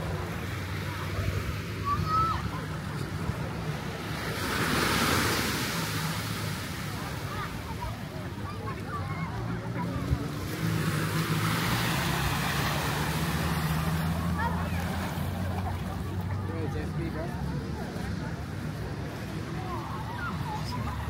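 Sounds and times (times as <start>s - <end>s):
surf washing onto beach: 0.0s - 21.0s.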